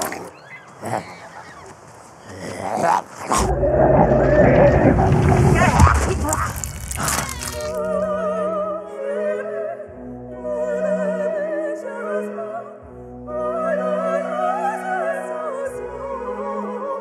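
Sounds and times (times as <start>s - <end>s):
deep rumble: 3.3s - 8.5s
operatic singing: 3.4s - 5.9s, 6.7s - 17.0s.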